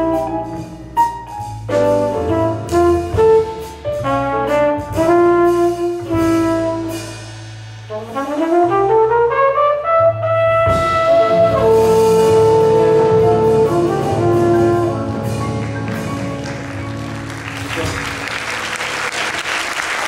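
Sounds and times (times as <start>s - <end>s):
jazz trumpet solo: 0.0s - 16.0s, 17.6s - 19.8s
upright double bass: 0.0s - 20.0s.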